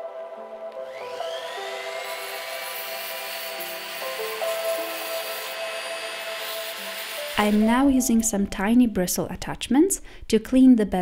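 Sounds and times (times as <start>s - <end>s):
background music: 0.0s - 9.4s
rotary tool whine: 0.8s - 7.7s.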